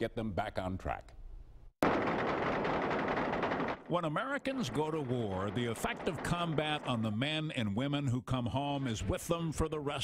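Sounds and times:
rapid rifle gunfire: 1.8s - 7.5s.

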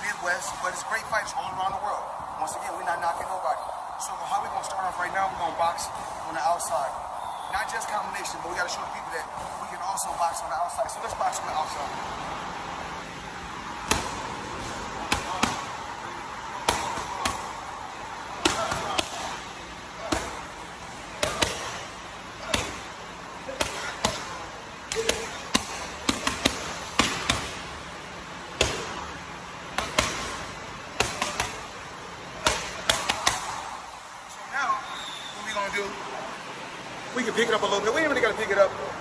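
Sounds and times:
boxing gloves striking mitts: 13.6s - 15.8s, 16.6s - 17.6s, 18.3s - 20.6s, 21.2s - 27.7s, 28.5s - 29.1s, 29.7s - 31.8s, 32.4s - 33.7s.

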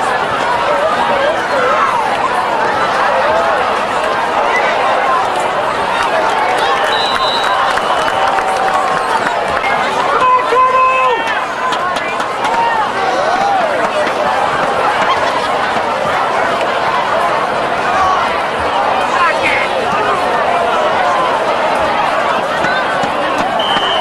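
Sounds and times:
crowd voices talking and calling: 0.0s - 24.0s
loud held call: 6.0s - 13.9s, 22.2s - 24.0s.

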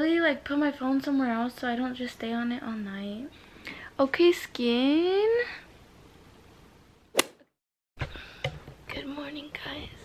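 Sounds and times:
sharp click: 7.2s - 7.4s.

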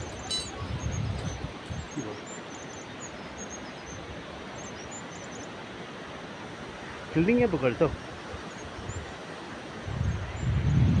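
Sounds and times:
bird chirps and trills: 0.0s - 5.6s, 7.2s - 9.2s.

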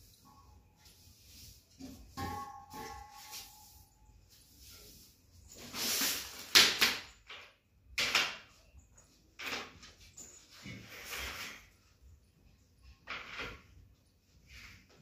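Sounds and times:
hand broom sweeping hard floor: 0.0s - 6.5s.

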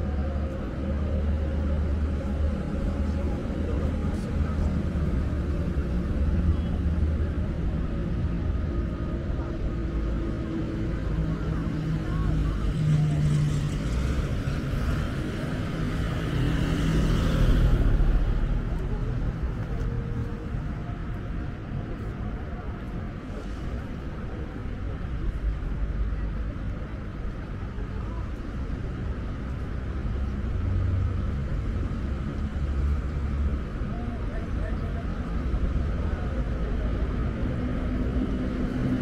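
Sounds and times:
road traffic: 0.0s - 39.0s.

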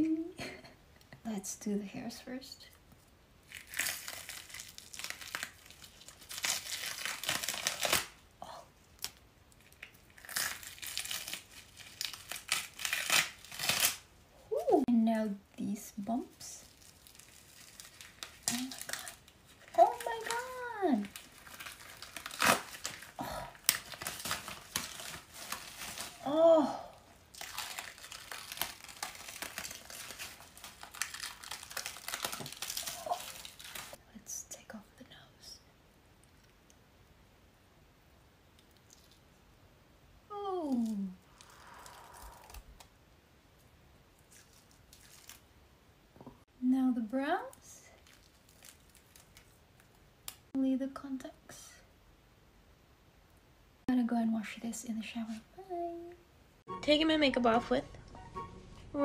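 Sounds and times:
prosthetics crinkling and tearing off skin: 2.9s - 8.2s, 8.8s - 14.1s, 16.1s - 26.4s, 27.1s - 34.0s, 38.5s - 39.4s, 40.5s - 42.9s, 44.1s - 45.5s, 47.4s - 50.5s.

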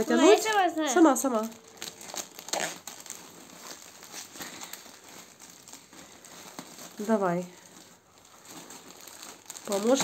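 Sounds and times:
plastic film crinkling: 0.0s - 10.0s.

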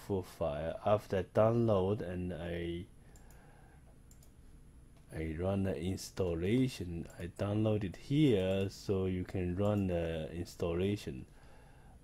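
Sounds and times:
faint computer mouse clicks: 3.1s - 3.4s, 4.1s - 4.4s.

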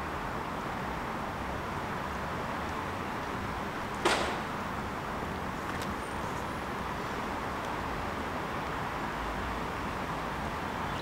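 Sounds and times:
railway station platform noise: 2.6s - 7.8s.

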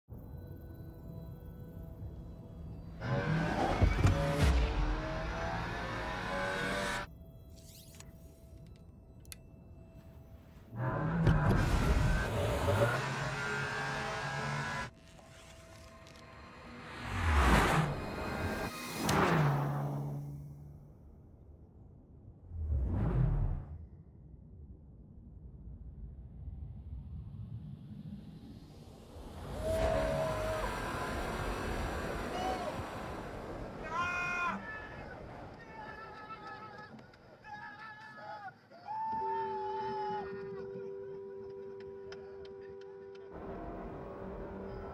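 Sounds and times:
ambient music drone: 0.1s - 21.1s, 38.6s - 44.9s
car engine revving: 3.0s - 7.1s, 10.7s - 14.9s
wind and road noise: 25.4s - 36.4s.

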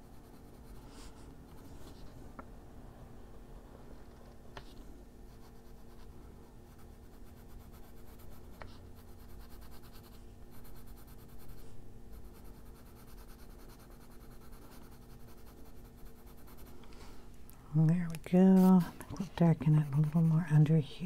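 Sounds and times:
coloured pencil scratching on paper: 0.0s - 2.1s, 5.3s - 16.8s, 18.4s - 21.0s
faint steady hum: 0.0s - 21.0s.

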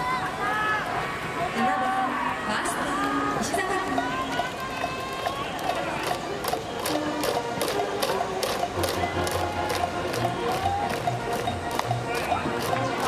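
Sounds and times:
brass band playing: 6.8s - 13.0s.

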